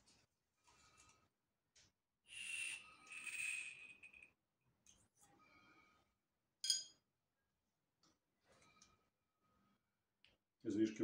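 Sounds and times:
glass ampoule clink: 0:06.6 - 0:07.0.

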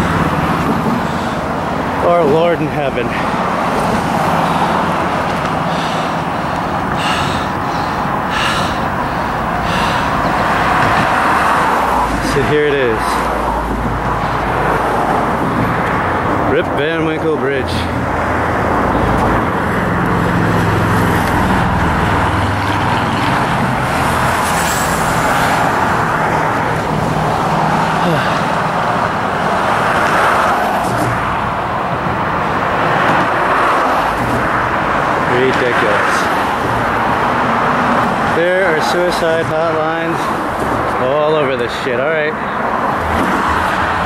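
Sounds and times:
cars driving past: 0:00.0 - 0:44.0.

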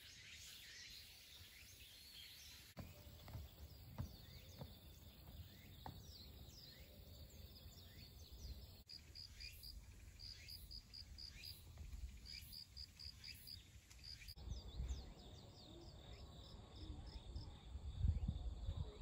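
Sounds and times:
insects chirping: 0:00.2 - 0:14.4
wind rumble on microphone: 0:14.4 - 0:15.6, 0:16.6 - 0:19.0.

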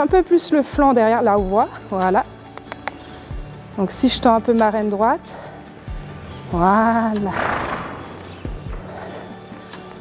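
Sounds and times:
quiet background music: 0:00.0 - 0:10.0
hooves thudding on sand: 0:04.3 - 0:10.0.

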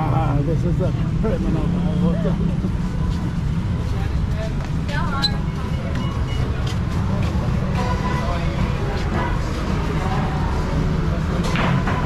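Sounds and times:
indistinct voices: 0:00.0 - 0:12.0
low rumble of traffic: 0:00.0 - 0:12.0.

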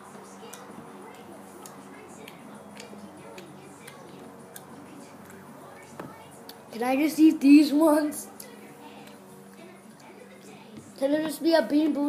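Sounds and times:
chewing mouth clicks: 0:00.5 - 0:05.4.

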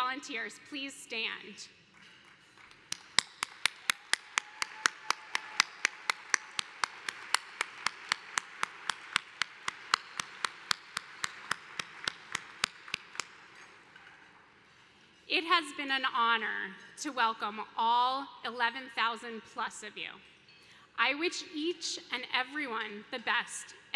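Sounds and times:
sharp hand claps near microphone: 0:02.0 - 0:13.7
audience applause: 0:02.5 - 0:13.2.

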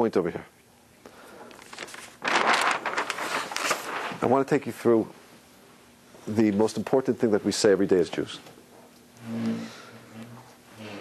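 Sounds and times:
paper sheet rustling and crackling: 0:01.6 - 0:04.7.

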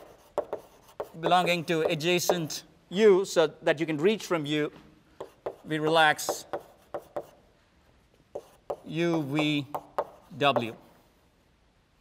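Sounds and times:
chalk tapping on blackboard: 0:00.0 - 0:02.6, 0:05.2 - 0:07.4, 0:08.3 - 0:10.8
man talking: 0:01.2 - 0:04.8, 0:05.6 - 0:06.6, 0:08.8 - 0:10.8.

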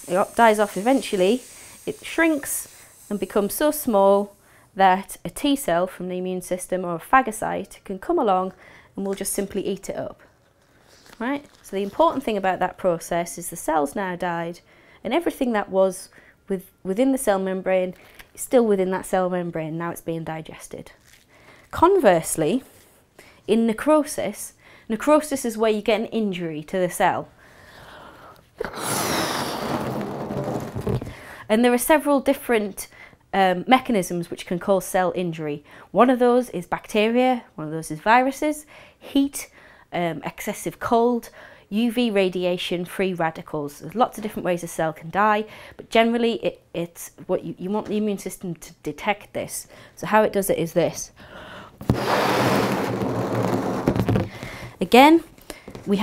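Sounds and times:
person blowing up balloon: 0:00.0 - 0:04.7, 0:28.6 - 0:31.2, 0:51.8 - 0:54.8.

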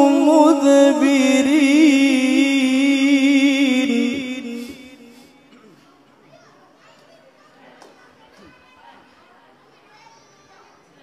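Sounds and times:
faint background voices: 0:04.4 - 0:11.0
children chattering: 0:05.4 - 0:11.0.

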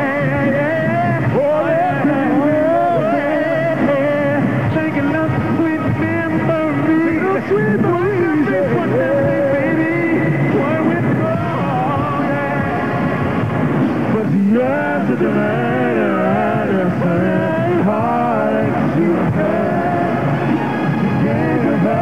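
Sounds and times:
male vocal group singing: 0:00.0 - 0:13.4, 0:14.0 - 0:22.0
marching band brass: 0:00.0 - 0:22.0.

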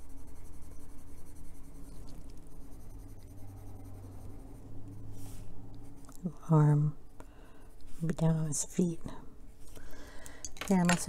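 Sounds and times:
coloured pencil scratching on paper: 0:00.0 - 0:06.6, 0:07.7 - 0:08.7
steady low hum: 0:00.0 - 0:11.0.

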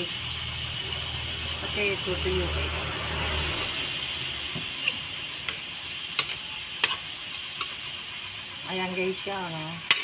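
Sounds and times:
water sizzling in hot wok: 0:00.0 - 0:10.0.

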